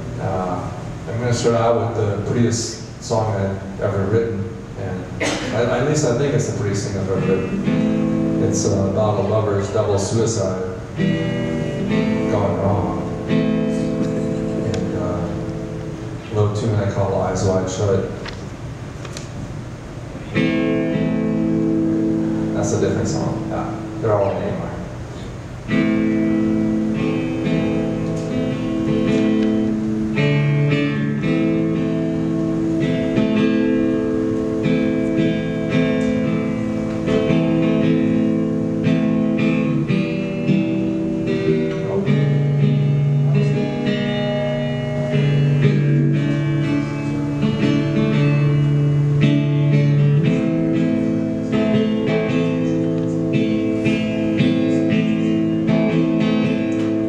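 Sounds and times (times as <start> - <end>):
acoustic guitar strumming chords: 0.0 - 57.0.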